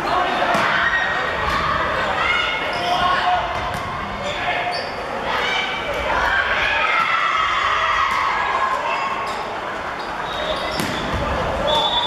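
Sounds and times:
people shouting and calling: 5.2s - 9.2s.

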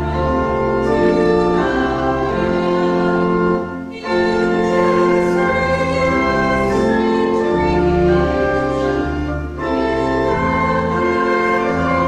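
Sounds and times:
organ playing sustained chords: 0.0s - 12.0s
voices singing a hymn: 0.0s - 12.0s.

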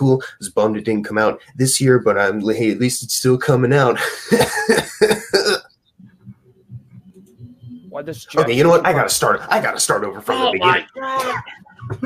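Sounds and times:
man laughing: 4.0s - 5.6s.

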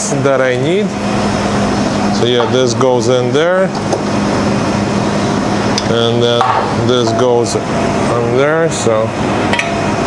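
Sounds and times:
machine hum with hiss: 0.0s - 10.0s.

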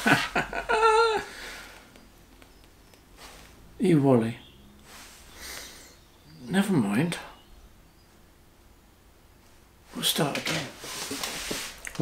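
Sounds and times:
man laughing: 0.0s - 1.7s.

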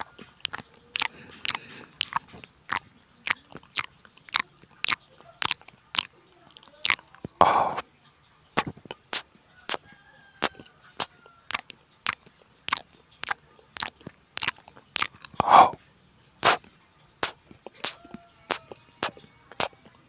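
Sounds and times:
wet chewing and crunching: 0.0s - 7.8s, 8.4s - 20.0s.

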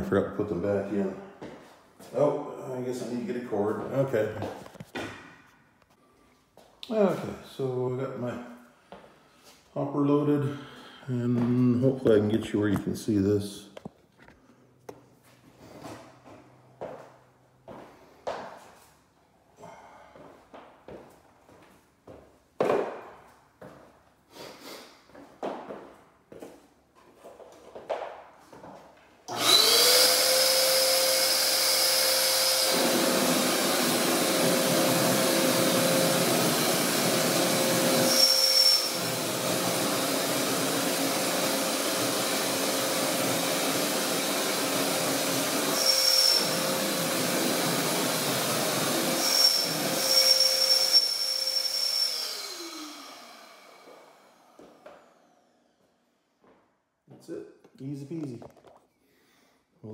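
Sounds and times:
electric blower whining: 29.3s - 55.9s.

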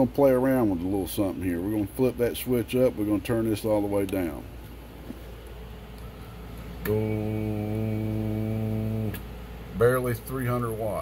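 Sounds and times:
low electrical hum: 0.0s - 11.0s
loud buzzing hum: 2.8s - 11.0s.

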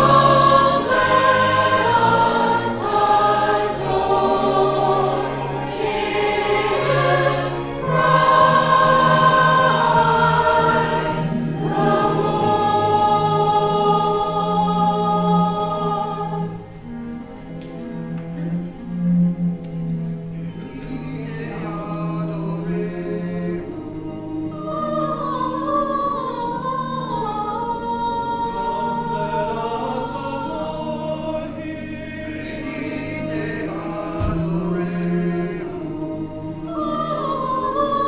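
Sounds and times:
church choir singing: 0.0s - 38.0s.

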